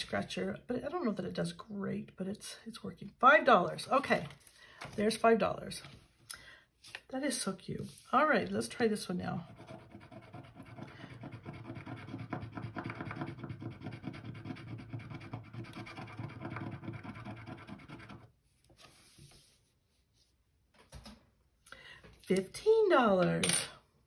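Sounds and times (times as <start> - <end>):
coin scratching a scratch card: 9.5 - 18.3
faint small rubs: 18.5 - 20.6.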